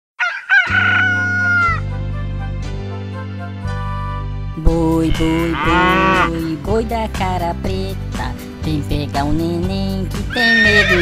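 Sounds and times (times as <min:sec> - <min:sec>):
rooster crowing: 0:00.2 - 0:01.8, 0:10.3 - 0:11.0
children's song accompaniment: 0:04.6 - 0:11.0.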